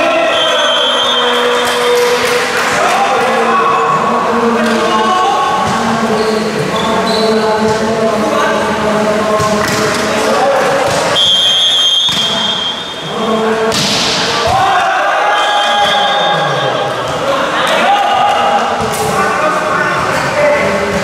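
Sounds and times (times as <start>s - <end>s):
spectators' voices: 0.0s - 21.0s
referee's whistle: 0.2s - 1.4s, 11.2s - 13.1s, 15.3s - 16.8s
volleyball serve hit: 13.7s - 14.7s.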